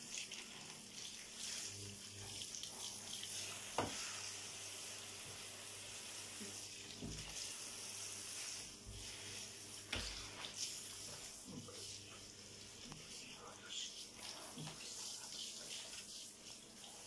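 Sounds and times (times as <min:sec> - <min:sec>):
shower water spraying: 0:00.0 - 0:17.0.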